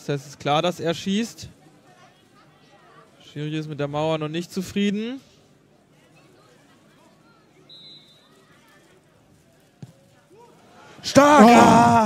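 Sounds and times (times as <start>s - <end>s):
distant crowd voices: 0.0s - 12.0s
referee's whistle blast: 7.7s - 8.2s.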